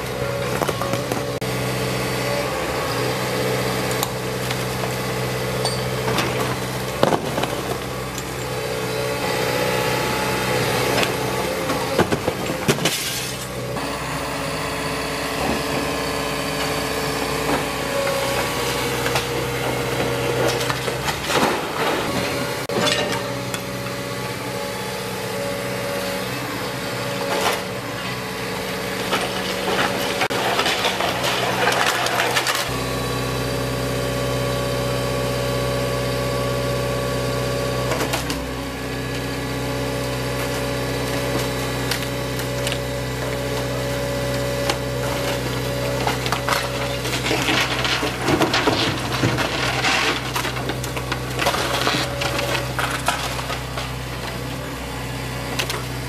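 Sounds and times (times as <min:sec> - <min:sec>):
excavator diesel engine running: 0:00.0 - 0:56.0
bricks and tiles falling: 0:46.0 - 0:54.0.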